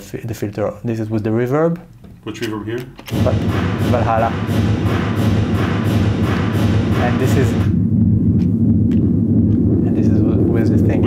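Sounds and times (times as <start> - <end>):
low synth drone: 3.1 - 11.0
rhythmic noise pulses with reverb: 3.1 - 11.0.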